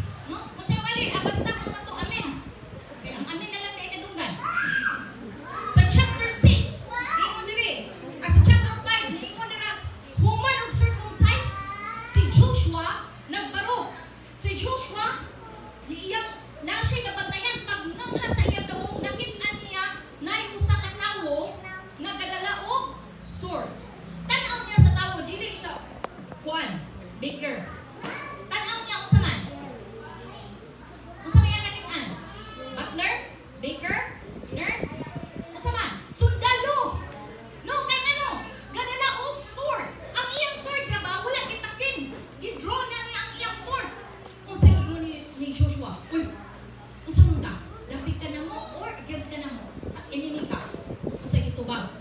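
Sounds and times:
woman preaching: 0.0 - 2.4, 3.0 - 4.4, 5.7 - 15.3, 15.9 - 27.6, 28.5 - 29.5, 31.3 - 35.0, 35.6 - 37.0, 37.6 - 46.4, 47.1 - 52.0
woman speaking in hall: 0.0 - 4.4, 7.4 - 11.6, 15.9 - 27.7, 32.8 - 37.0, 37.6 - 43.9, 44.5 - 52.0.

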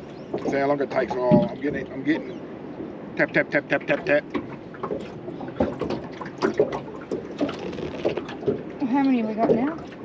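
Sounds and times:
water sound: 0.0 - 10.0.

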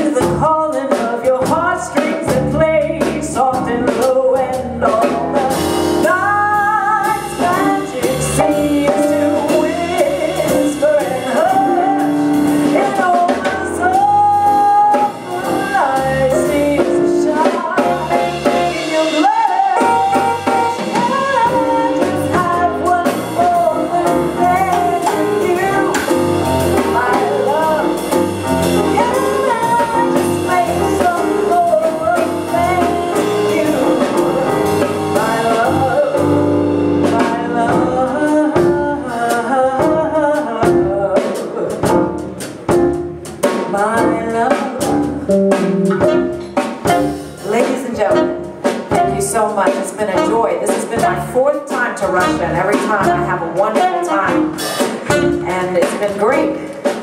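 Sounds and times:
woman singing: 0.0 - 42.2, 43.4 - 46.3, 46.9 - 57.0
blues jazz band playing: 0.0 - 57.0.

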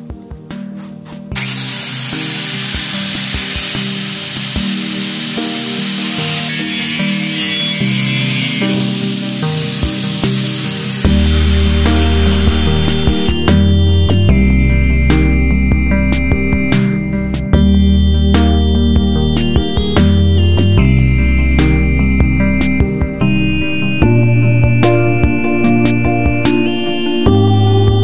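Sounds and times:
background music: 0.0 - 28.0
angle grinder cutting steel: 1.3 - 14.1.

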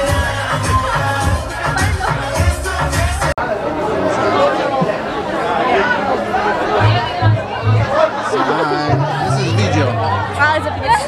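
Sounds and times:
bar music: 0.0 - 4.4, 6.2 - 11.0
people chatting: 3.4 - 11.0
low bass line: 6.8 - 8.0, 8.8 - 10.6.

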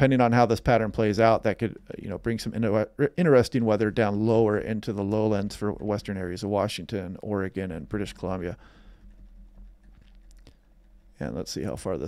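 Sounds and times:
faint low hum: 0.0 - 12.0
faint clicks: 8.1 - 12.0.

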